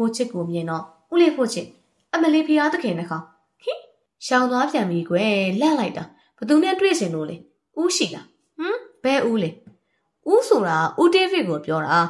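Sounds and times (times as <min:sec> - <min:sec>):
narrator reading aloud: 0:00.0 - 0:09.7.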